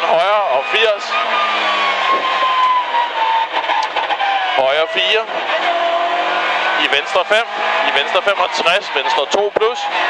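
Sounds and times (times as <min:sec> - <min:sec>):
rally car engine under load: 0:00.0 - 0:10.0.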